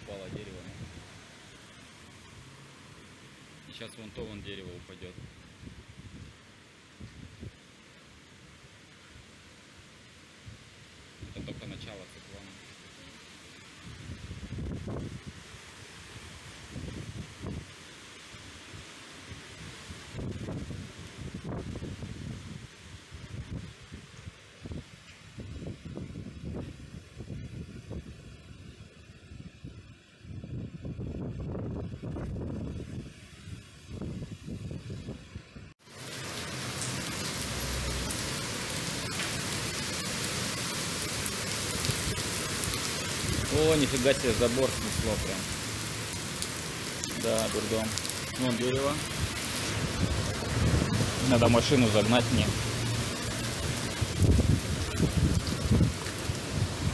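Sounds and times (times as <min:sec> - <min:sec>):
heavy rain hissing: 0:00.0 - 0:35.2, 0:35.8 - 0:56.9
strong wind buffeting microphone: 0:13.9 - 0:15.5, 0:16.6 - 0:17.7, 0:19.6 - 0:35.7, 0:49.0 - 0:51.3, 0:53.2 - 0:56.9.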